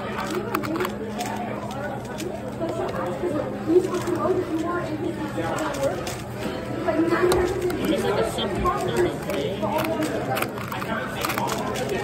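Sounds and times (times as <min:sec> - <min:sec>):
chatter of voices: 0:00.0 - 0:12.0.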